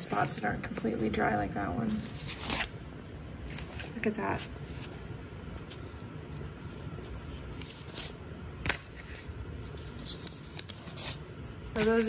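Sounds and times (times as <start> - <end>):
air conditioner humming: 0.0 - 12.0
stiff paper rustling: 6.8 - 12.0.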